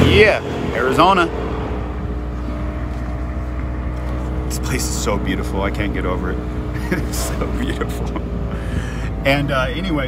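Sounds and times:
engine and road noise rumble: 0.0 - 10.0.

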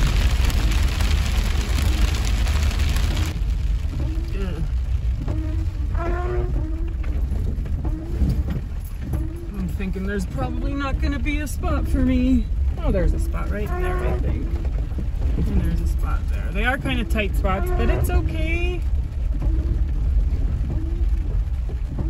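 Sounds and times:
rain drumming on a car roof: 0.0 - 22.0
vehicle driving rumble: 0.0 - 22.0.

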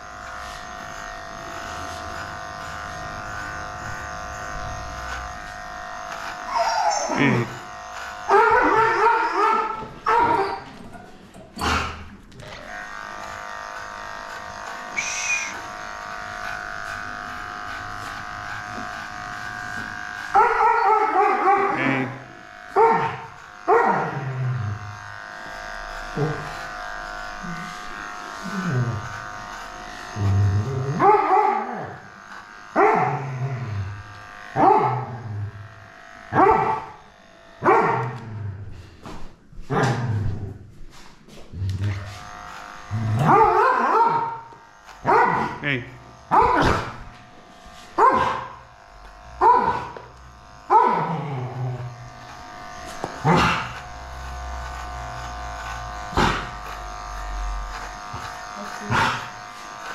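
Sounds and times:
electric dog clippers running: 0.0 - 59.9
dog barking: 8.3 - 10.6, 20.4 - 21.9, 22.7 - 24.2, 31.0 - 31.7, 32.8 - 33.1, 34.6 - 35.1, 36.3 - 37.0, 37.6 - 38.2, 43.2 - 44.4, 45.0 - 45.6, 46.3 - 46.9, 48.0 - 48.6, 49.4 - 50.0, 50.7 - 51.1.

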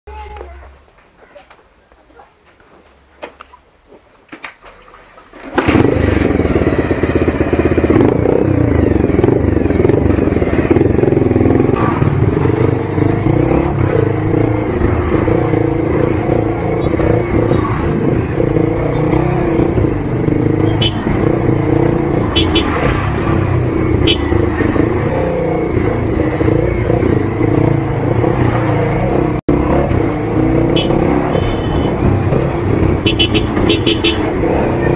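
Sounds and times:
road and wind noise: 0.1 - 34.9
motorcycle engine running: 5.4 - 34.9.

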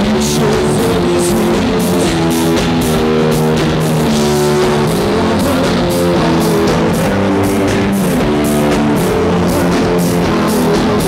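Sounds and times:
drum kit with cymbals: 0.0 - 11.0
electric bass: 0.0 - 11.0
electric guitar: 0.0 - 11.0.

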